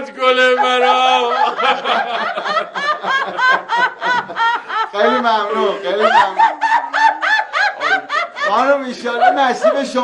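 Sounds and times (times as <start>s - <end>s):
man laughing heartily: 0.4s - 10.0s.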